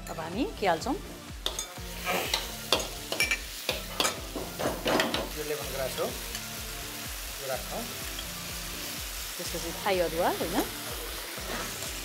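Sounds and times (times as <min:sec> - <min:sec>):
frying sizzle: 0:00.0 - 0:12.0
metal spoon scraping wok: 0:01.4 - 0:05.2, 0:11.0 - 0:12.0.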